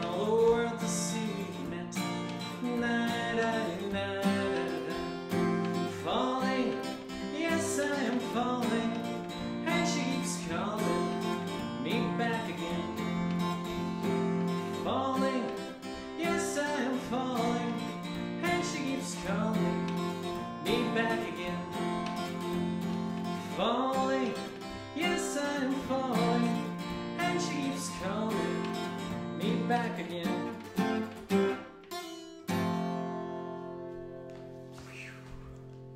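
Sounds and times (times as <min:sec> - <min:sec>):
man singing: 0:00.0 - 0:31.2
acoustic guitar strumming: 0:00.0 - 0:35.9.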